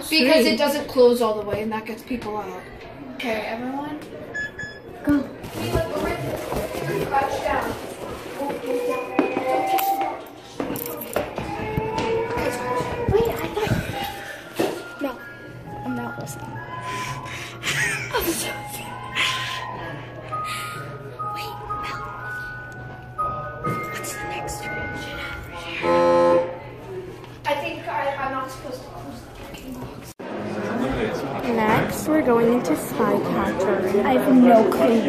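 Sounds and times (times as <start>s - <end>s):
faint voices: 3.8s - 35.0s
background music: 11.7s - 26.7s.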